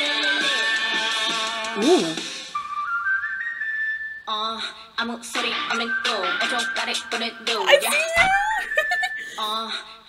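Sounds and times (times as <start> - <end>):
whistle-like flute melody: 0.2 - 4.5, 5.6 - 7.2, 7.9 - 9.4.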